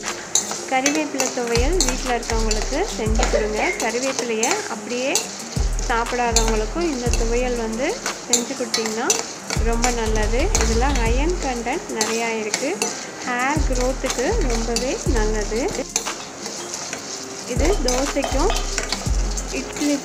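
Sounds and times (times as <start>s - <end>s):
lentils sizzling in oil: 0.0s - 20.0s
spatula scraping pan: 0.0s - 20.0s
melody with bass notes: 1.6s - 4.0s, 9.6s - 11.8s, 17.6s - 19.8s.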